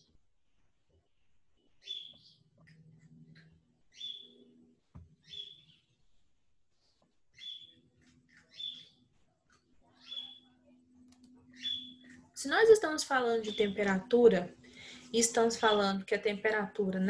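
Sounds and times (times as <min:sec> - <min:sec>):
bird chirping: 0:00.8 - 0:06.2, 0:06.8 - 0:09.2, 0:09.9 - 0:10.7, 0:11.4 - 0:12.2, 0:13.3 - 0:14.0, 0:14.8 - 0:16.0.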